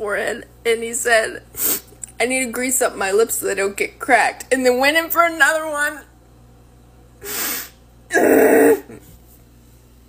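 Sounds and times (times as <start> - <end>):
sharp breath in: 7.2 - 7.8
person sneezing: 7.2 - 9.0.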